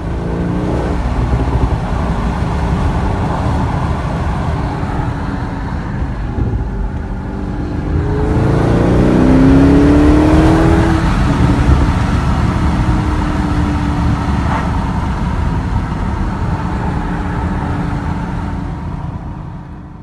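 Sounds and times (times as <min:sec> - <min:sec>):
car engine accelerating: 0:00.0 - 0:20.0
road rumble: 0:00.0 - 0:20.0.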